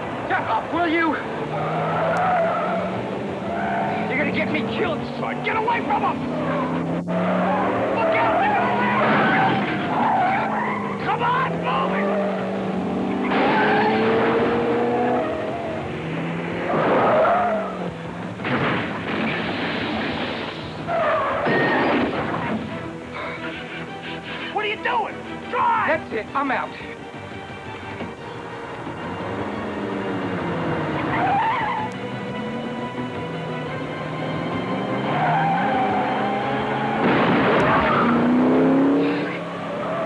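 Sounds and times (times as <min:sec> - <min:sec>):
car engines revving: 0:00.0 - 0:40.0
tires squealing: 0:00.2 - 0:26.0, 0:28.2 - 0:40.0.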